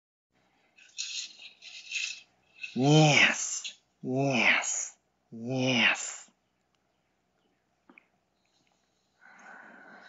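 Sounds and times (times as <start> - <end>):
breathy hissing exhalations: 9.0 - 10.0.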